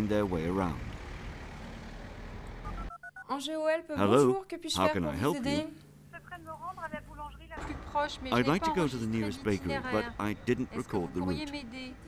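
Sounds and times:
street traffic noise: 0.0 - 2.9, 6.1 - 12.0
rising electronic beeps: 2.6 - 3.3.

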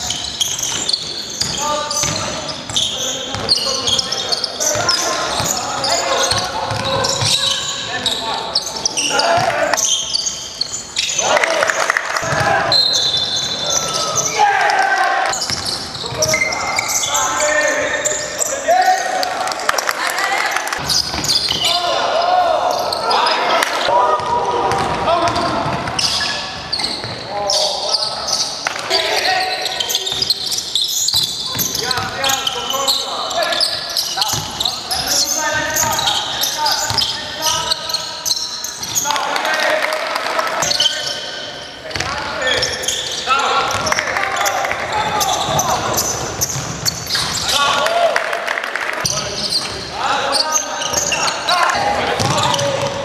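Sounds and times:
voices calling out: 0.0 - 53.0
basketball bouncing on floor: 1.4 - 2.3, 6.3 - 7.3, 52.2 - 53.0.

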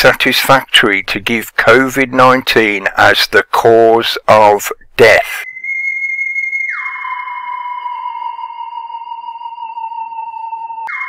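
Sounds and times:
steady electronic tone: 5.4 - 11.0.

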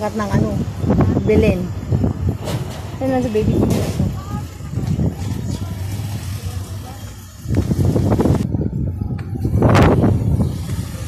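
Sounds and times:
indistinct voices: 0.0 - 11.0
low uneven rumble: 0.0 - 11.0.

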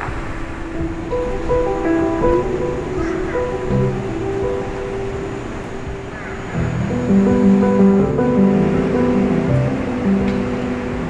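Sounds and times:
instrumental background music: 0.1 - 11.0.

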